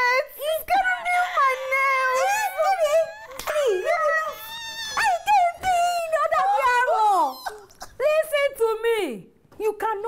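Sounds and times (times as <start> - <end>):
woman wailing: 0.5 - 7.9.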